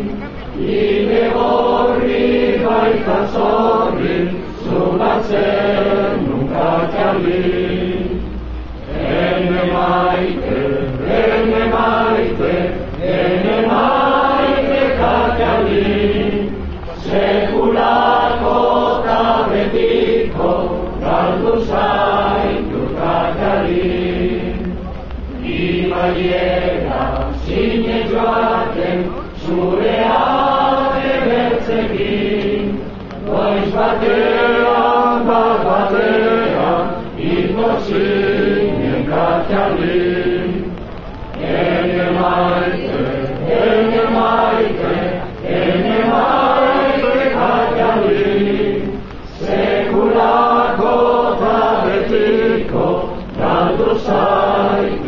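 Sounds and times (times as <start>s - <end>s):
crowd singing together: 0.0s - 55.0s.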